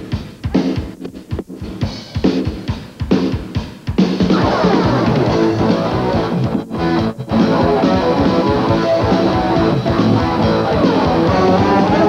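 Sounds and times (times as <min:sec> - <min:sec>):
folk-rock band playing: 0:04.2 - 0:12.0.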